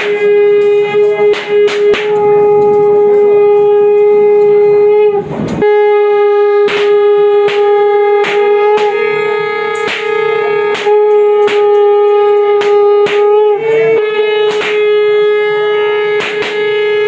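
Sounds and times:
reed wind instrument note: 0.0 - 17.0
sharp drum strikes: 0.0 - 17.0.

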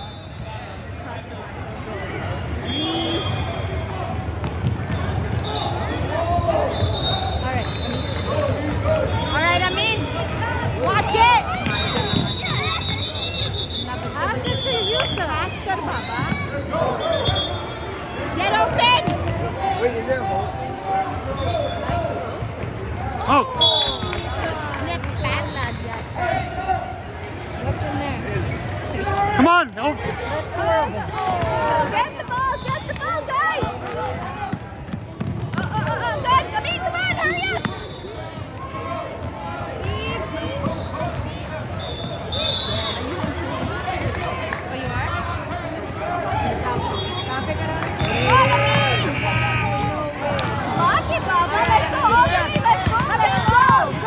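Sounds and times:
spectators talking and calling out: 0.0 - 54.0
sneakers squeaking: 2.2 - 19.9, 20.9 - 24.3, 30.0 - 33.7, 34.8 - 43.5, 46.6 - 54.0.

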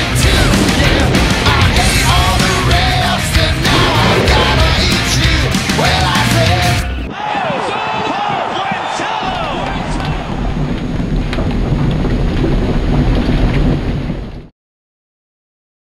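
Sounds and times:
steady noisy roar: 0.0 - 6.9
overlapping voices: 0.0 - 10.7.

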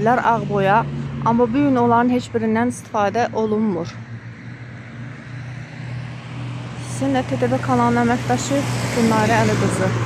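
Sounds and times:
car approaching on road: 0.0 - 10.0.

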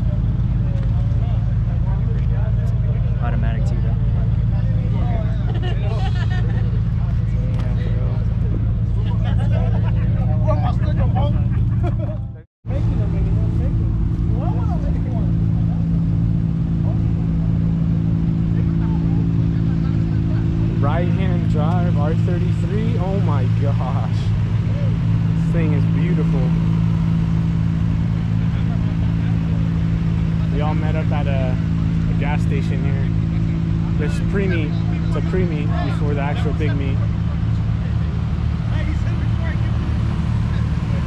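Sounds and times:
people talking: 0.0 - 16.0, 18.4 - 26.6, 28.4 - 41.0
car engine idling: 0.0 - 41.0.

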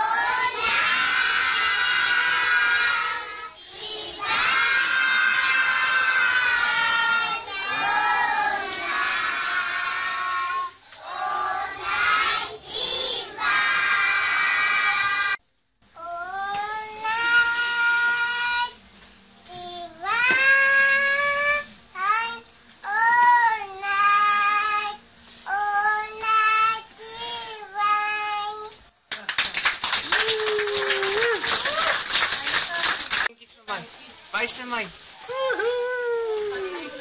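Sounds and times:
children singing in unison: 0.0 - 15.4
girl singing in a high voice: 16.0 - 18.8, 19.5 - 28.8.

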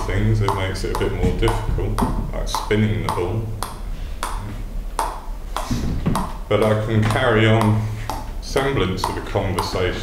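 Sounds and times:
table tennis ball bouncing on bat: 0.0 - 10.0.

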